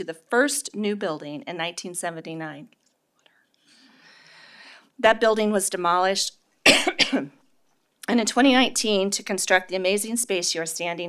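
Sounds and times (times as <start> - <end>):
woman speaking: 0.0 - 2.7, 5.0 - 7.3, 8.0 - 11.0
woman drawing in a breath: 3.3 - 4.9.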